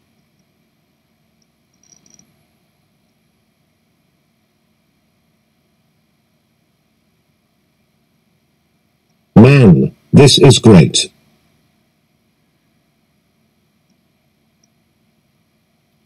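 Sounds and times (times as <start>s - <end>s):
faint clicks: 13.8s - 14.0s, 14.6s - 14.8s.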